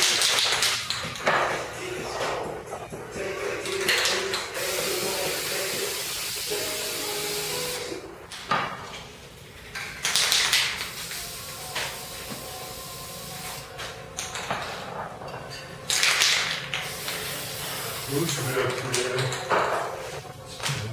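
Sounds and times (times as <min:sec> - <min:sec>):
aerosol spray can hissing: 0:04.6 - 0:08.0, 0:10.4 - 0:13.7, 0:16.8 - 0:18.6.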